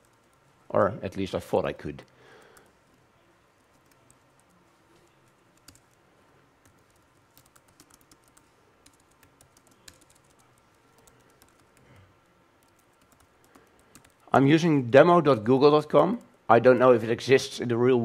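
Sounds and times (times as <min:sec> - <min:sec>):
soft laptop keyboard typing: 0:00.0 - 0:00.7, 0:02.0 - 0:14.3, 0:16.0 - 0:16.5.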